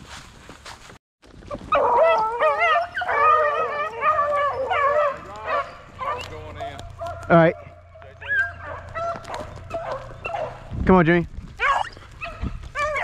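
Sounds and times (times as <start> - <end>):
beagles baying: 1.7 - 10.8, 11.5 - 13.0.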